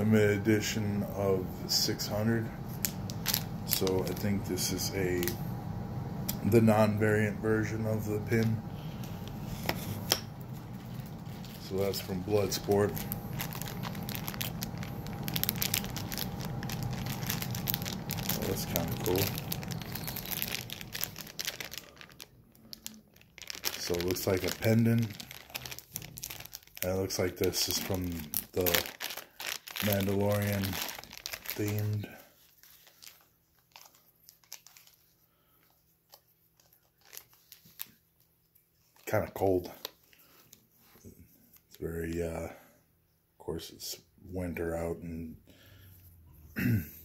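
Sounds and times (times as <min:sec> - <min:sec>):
plastic bag crinkling: 0:00.0 - 0:05.4, 0:06.3 - 0:41.8.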